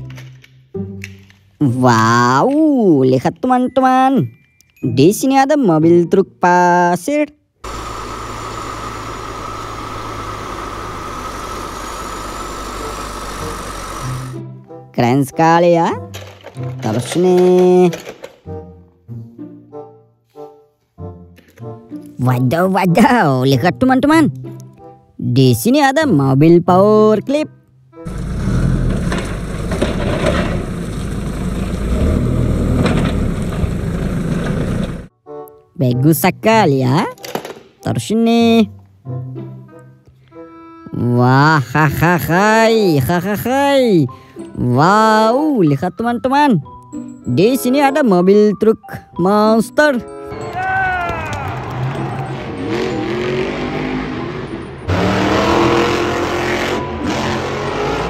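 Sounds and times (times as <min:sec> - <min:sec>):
forklift engine running: 0:07.6 - 0:14.5, 0:28.1 - 0:35.1
truck engine revving hard: 0:28.1 - 0:35.1, 0:51.6 - 0:58.0.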